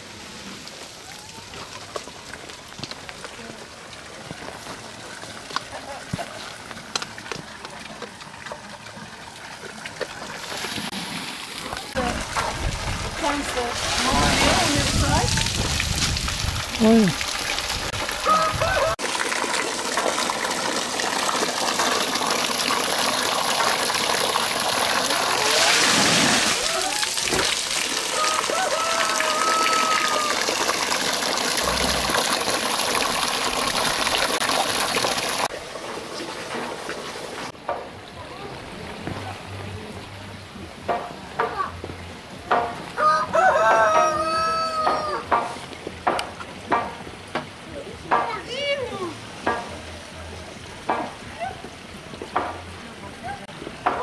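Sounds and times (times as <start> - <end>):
water gushing from a pipe: 0.0 - 37.6
rooster crowing: 18.2 - 19.0, 28.1 - 30.5, 43.0 - 45.3.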